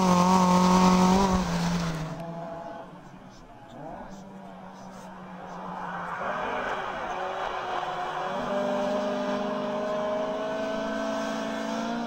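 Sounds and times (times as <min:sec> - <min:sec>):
rally car engine accelerating: 0:00.0 - 0:12.0
tyre and road noise: 0:00.0 - 0:12.0.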